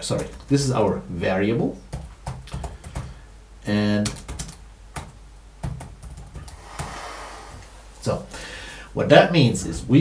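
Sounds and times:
computer keyboard typing: 1.9s - 3.2s, 4.0s - 6.6s.

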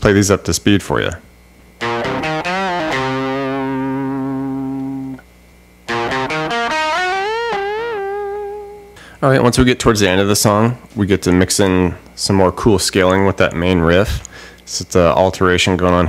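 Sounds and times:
electric guitar lead fills: 1.8s - 5.2s, 5.9s - 9.0s.

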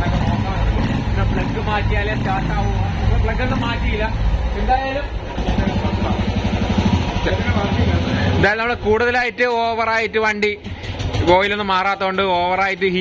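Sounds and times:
motorcycle engine running: 0.0s - 9.0s.

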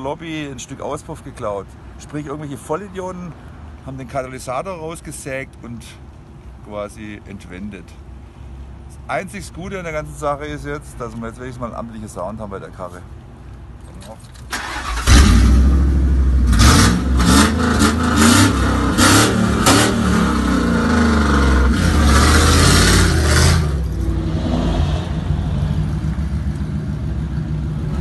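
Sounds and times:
van engine starting: 14.4s - 24.1s
van engine revving with raw exhaust: 14.8s - 28.0s.

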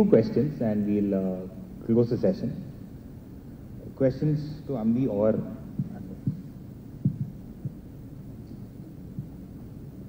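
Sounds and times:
sound system hum: 0.0s - 10.0s
microphone handling thumps: 5.7s - 7.9s, 9.1s - 9.4s.

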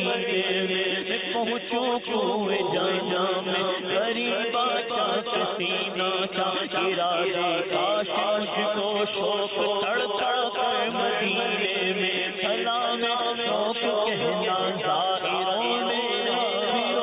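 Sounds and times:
man singing devotional song: 0.0s - 17.0s.

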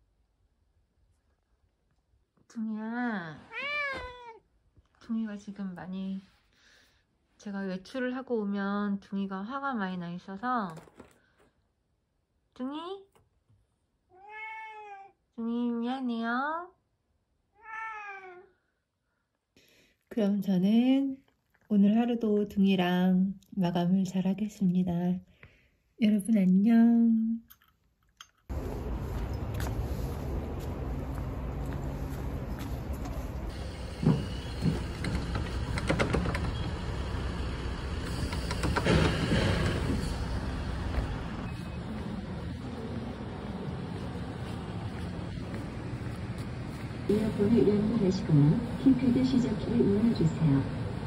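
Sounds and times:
cat meowing: 3.5s - 4.4s, 14.1s - 15.2s, 17.5s - 18.5s
street traffic rumble: 28.5s - 51.0s
knocks and thumps: 33.9s - 37.0s, 38.1s - 41.2s.

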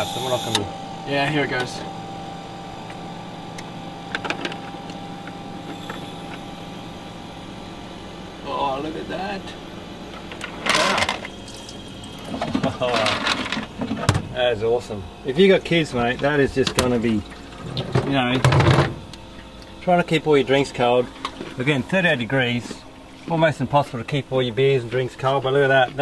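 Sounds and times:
ice maker humming: 0.0s - 26.0s.

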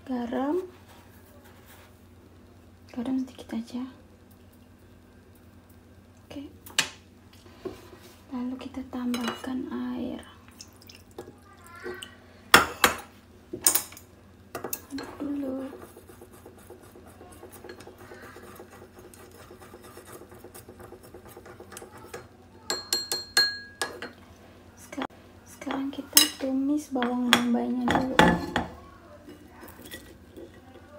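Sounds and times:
chopsticks stirring sauce: 14.6s - 24.2s
ceramic bowl ringing: 22.7s - 24.0s.

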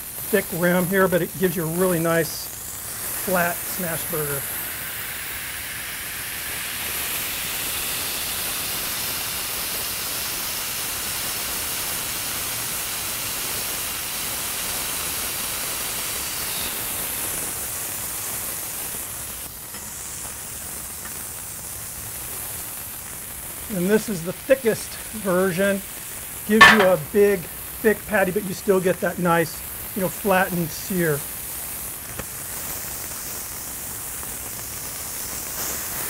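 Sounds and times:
meat patties sizzling on griddle: 0.0s - 36.0s.

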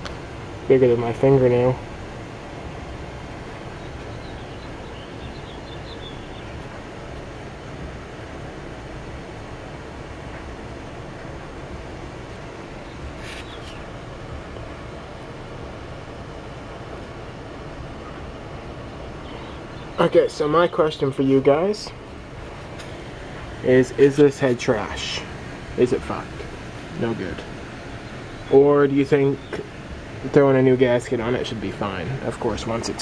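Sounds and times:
ambient background noise: 0.0s - 33.0s.

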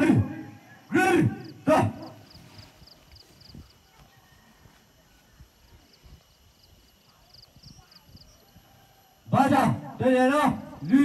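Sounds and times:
faint high chirping: 0.6s - 9.3s.

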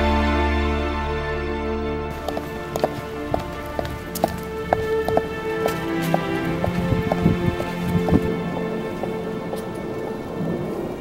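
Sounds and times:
slow background music: 0.0s - 11.0s
footsteps on pavement: 2.1s - 10.6s.

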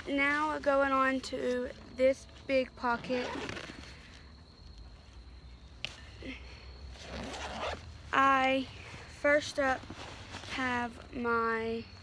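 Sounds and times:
zipper being pulled open: 3.0s - 4.0s, 6.9s - 7.9s.

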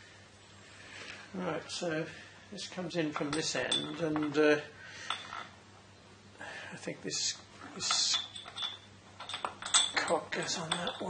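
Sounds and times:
metal parts clicking and clinking: 3.1s - 4.4s, 5.1s - 5.5s, 7.8s - 11.0s.

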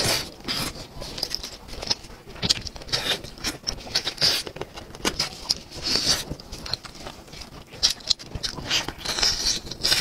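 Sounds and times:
person chewing with wet smacks: 0.0s - 10.0s.

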